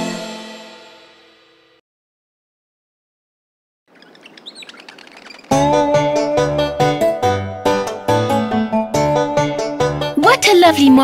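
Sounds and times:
birds chirping: 3.9s - 6.3s
keyboard tune with bass line: 5.5s - 11.0s.

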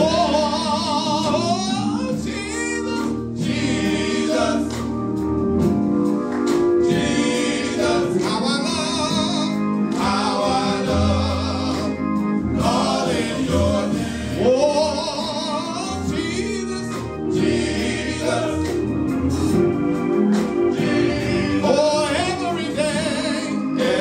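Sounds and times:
male vocal group singing harmony: 0.0s - 5.1s, 6.8s - 24.0s.

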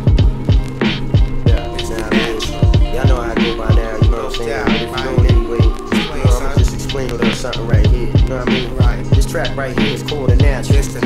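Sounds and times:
boom-bap hip hop beat: 0.0s - 11.0s.

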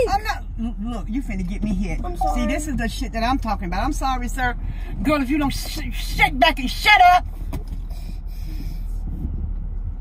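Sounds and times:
car engine low rumble: 0.0s - 10.0s
road noise inside car: 0.0s - 10.0s.

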